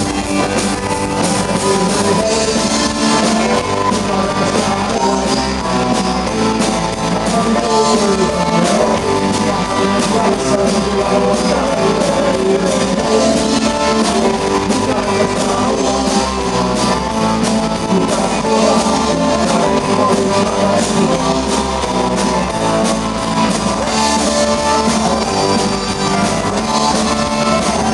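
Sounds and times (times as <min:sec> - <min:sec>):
rock band playing live: 0:00.0 - 0:27.9.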